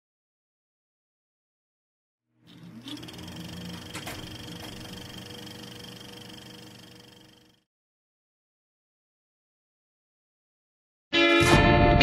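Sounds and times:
film projector whirring: 2.4 - 7.6
projector clicks: 2.5 - 7.4.

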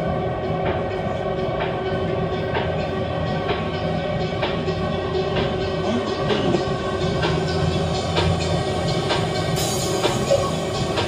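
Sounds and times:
electronic dance music: 5.3 - 11.0.

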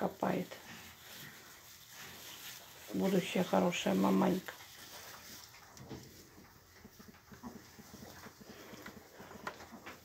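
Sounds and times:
straw rustling: 0.0 - 10.0
pigs grunting softly: 5.1 - 10.0.

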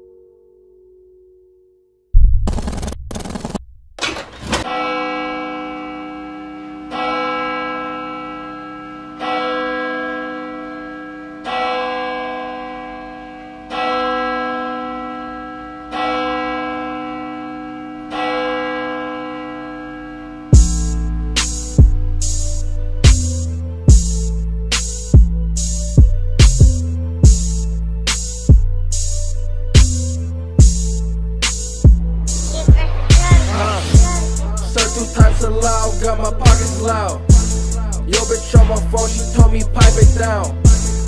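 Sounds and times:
loud noise hits: 2.2 - 4.4.

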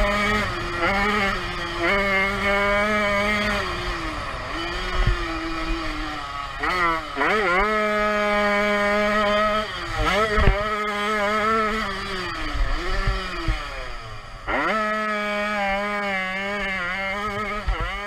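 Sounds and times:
two-stroke engine racing: 0.0 - 18.0.

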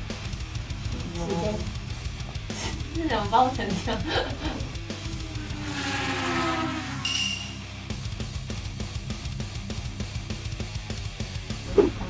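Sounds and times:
rock music: 0.0 - 12.0
falling-pitch glide effect: 5.0 - 7.7.

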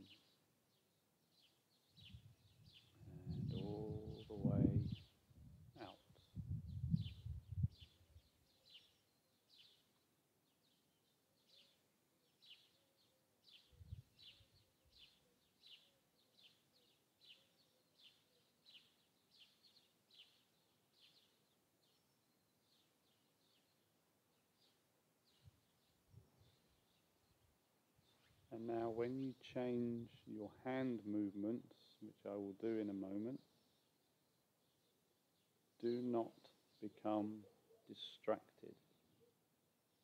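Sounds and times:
small bird chirps: 0.0 - 5.2, 5.8 - 28.5
low muffled rumbles: 2.1 - 7.8.

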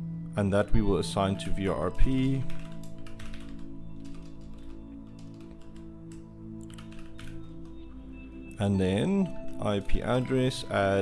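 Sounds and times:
soft ambient music: 0.0 - 11.0
keyboard typing: 2.0 - 7.9.

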